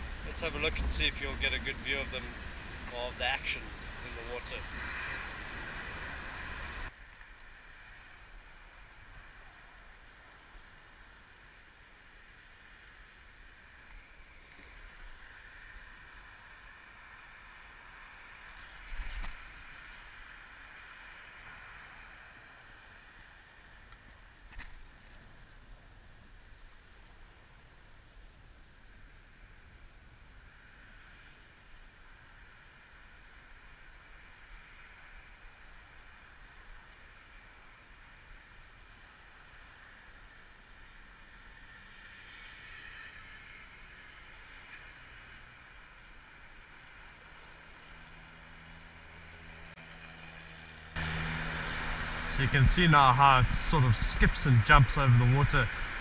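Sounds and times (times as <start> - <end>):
loud rumble with low hum: 0.0 - 6.9, 50.9 - 56.0
outdoor background rumble and hiss: 0.0 - 56.0.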